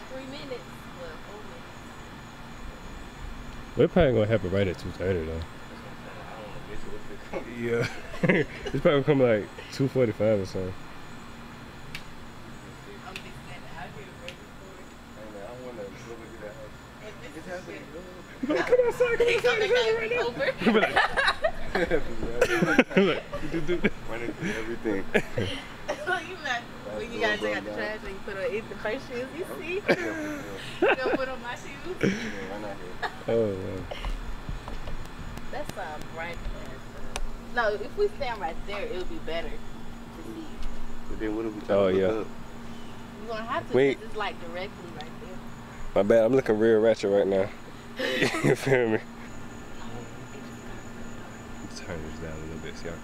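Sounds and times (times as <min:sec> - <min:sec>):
distant voices talking: 0:00.0 - 0:53.0
low background hum: 0:00.0 - 0:53.0.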